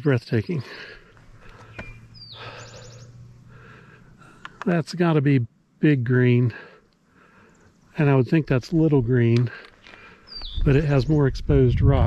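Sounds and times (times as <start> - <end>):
bird calling: 0.2 - 4.6, 9.7 - 11.2.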